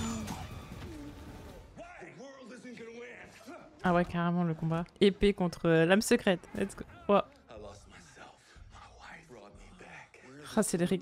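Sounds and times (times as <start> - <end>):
sound effects and score: 0.0 - 1.8.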